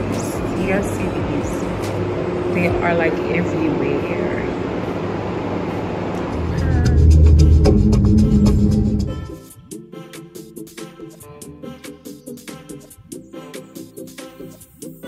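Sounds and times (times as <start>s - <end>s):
noisy background: 0.0s - 9.8s
indistinct voices: 6.1s - 9.2s
music with deep bass: 6.2s - 15.0s.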